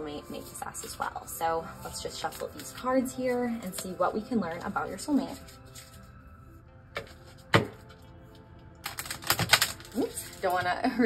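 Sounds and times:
soft background music: 0.0s - 11.0s
deck of cards slapping: 8.8s - 10.4s
cards clicking while shuffled: 8.8s - 10.6s.

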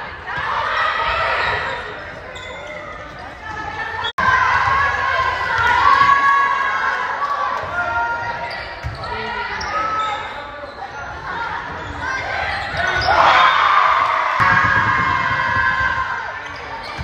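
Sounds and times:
players and spectators calling out: 0.0s - 17.0s
volleyball hits: 14.4s - 16.2s.

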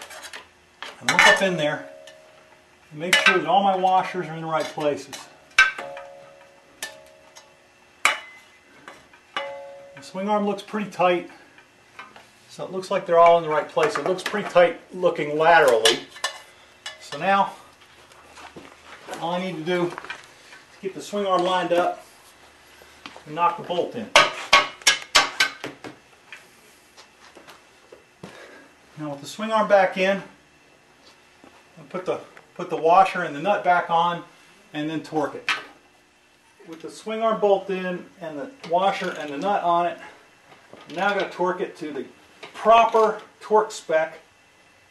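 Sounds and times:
metal striking metal: 5.1s - 8.5s, 9.4s - 10.2s.

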